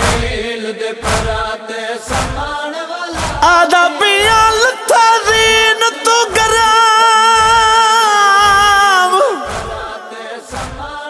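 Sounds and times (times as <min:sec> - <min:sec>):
heavy beat: 0:00.0 - 0:11.0
person chanting a lament: 0:00.0 - 0:11.0.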